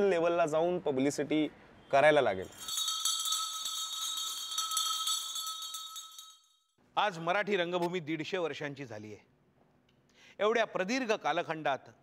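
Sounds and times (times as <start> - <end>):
shimmering bell-like ringing: 2.5 - 6.8.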